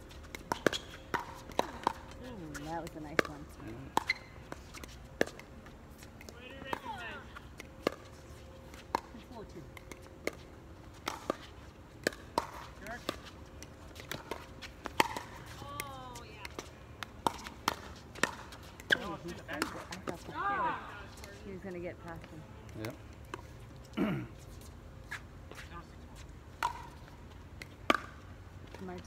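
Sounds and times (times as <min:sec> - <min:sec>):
paddles striking pickleball: 0:00.1 - 0:23.6, 0:26.5 - 0:29.0.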